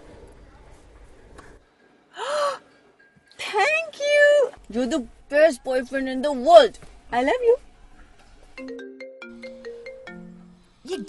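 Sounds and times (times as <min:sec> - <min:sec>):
phone ringtone melody: 0:08.6 - 0:11.0.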